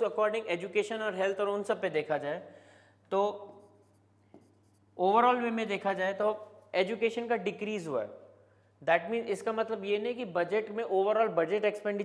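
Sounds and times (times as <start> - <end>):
person speaking: 0.0 - 12.0
pen scratching on a board: 3.5 - 4.9.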